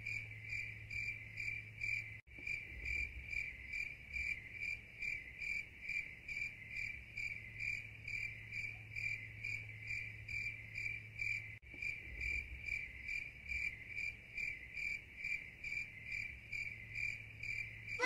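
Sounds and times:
insect chirping: 0.0s - 18.0s.

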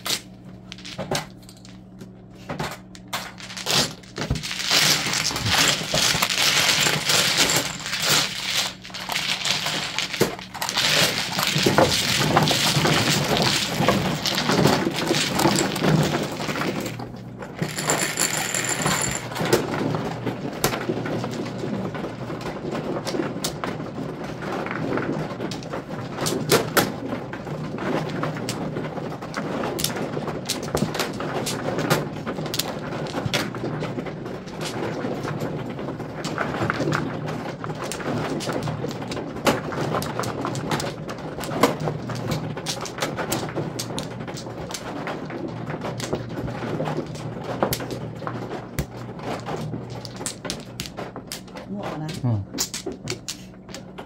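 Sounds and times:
mahjong tiles clicking: 3.3s - 17.0s, 48.8s - 53.9s.

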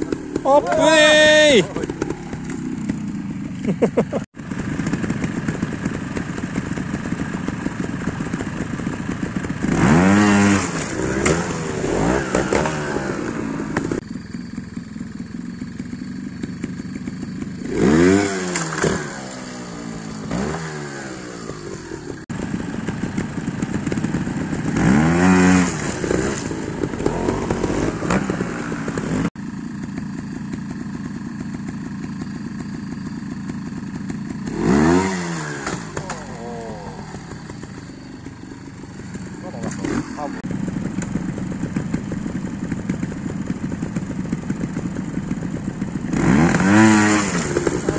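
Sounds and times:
motorcycle engine throttle bursts: 0.0s - 47.9s.

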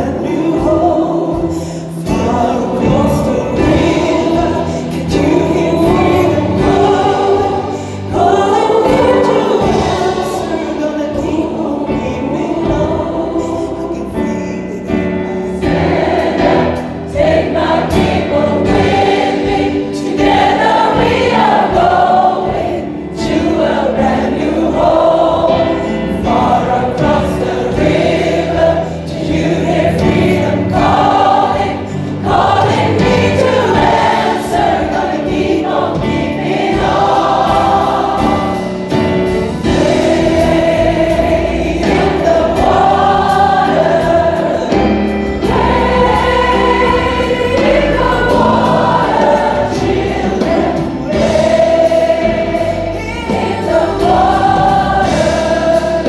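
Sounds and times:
band accompaniment: 0.0s - 56.0s
gospel choir singing: 0.0s - 56.0s.

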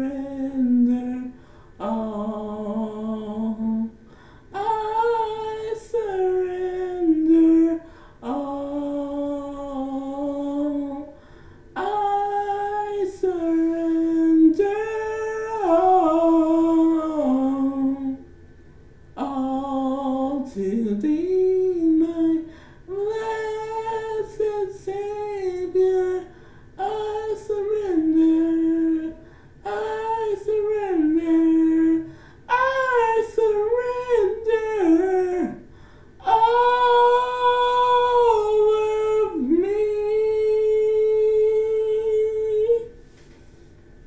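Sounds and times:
woman singing unaccompanied: 19.2s - 35.6s.

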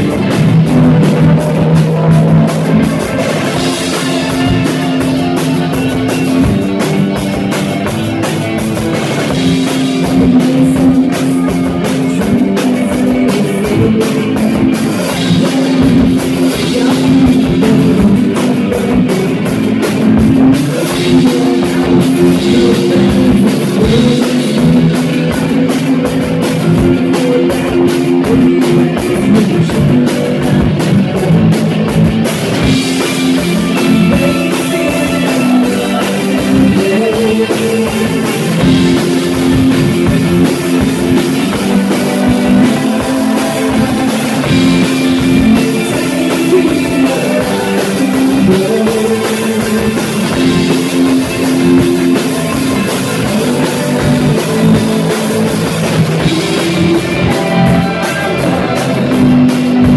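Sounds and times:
bass guitar: 0.0s - 59.9s
drum kit: 0.0s - 59.9s
electric guitar: 0.0s - 59.9s
woman singing: 10.0s - 30.7s.

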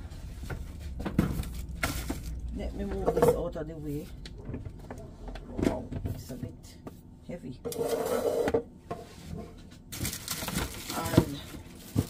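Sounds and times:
rustling and handling noise: 0.0s - 7.1s, 7.7s - 12.0s
kitchen items scraping on countertop: 7.6s - 9.7s.

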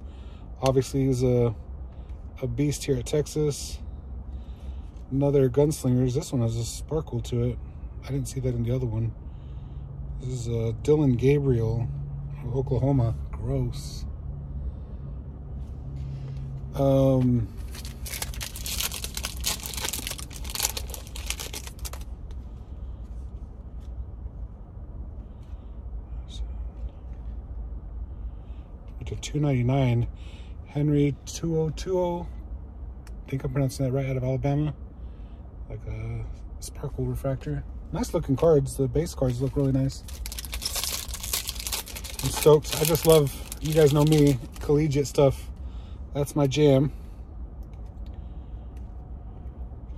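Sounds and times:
foil wrapper crinkling and tearing: 17.6s - 22.1s, 40.0s - 44.7s.

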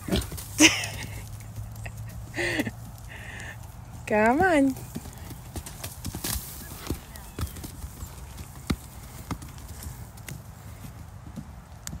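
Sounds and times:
hoofbeats on packed dirt: 0.0s - 12.0s.

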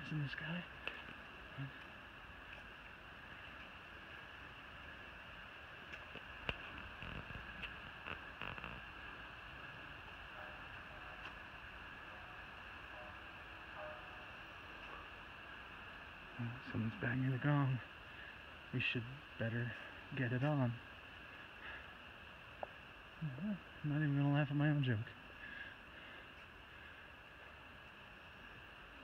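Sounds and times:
insect chorus drone: 0.0s - 29.0s.

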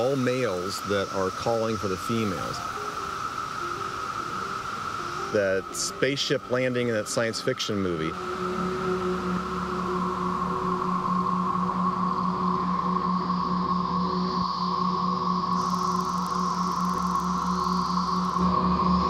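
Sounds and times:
cicadas droning: 0.0s - 19.0s
low pulsing hum: 7.9s - 19.0s.

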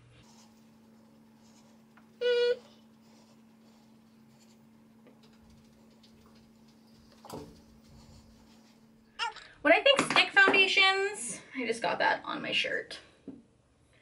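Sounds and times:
low steady hum: 0.0s - 14.0s.

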